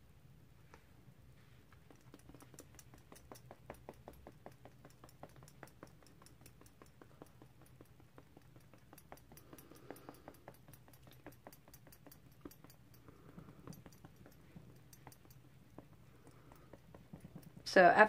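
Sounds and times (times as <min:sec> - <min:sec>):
makeup sponge tapping skin: 0:01.7 - 0:17.8.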